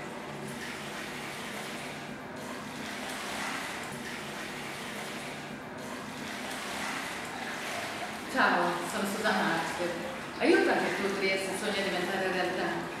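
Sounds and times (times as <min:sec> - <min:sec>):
pool water rushing: 0:00.0 - 0:13.0.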